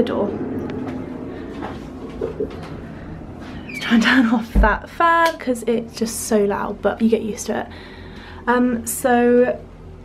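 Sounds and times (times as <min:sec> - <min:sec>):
extractor fan buzzing hum: 0:00.0 - 0:10.0.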